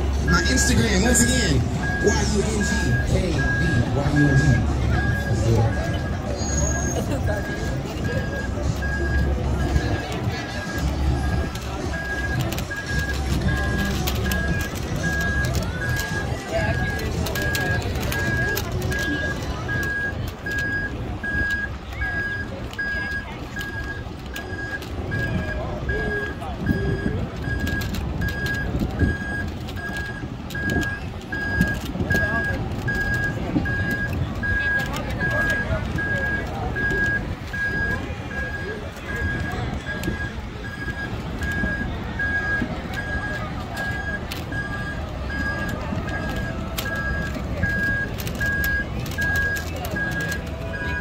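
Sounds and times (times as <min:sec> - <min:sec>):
crowd chatter: 0:00.0 - 0:51.0
vehicle warning beeper: 0:00.0 - 0:51.0.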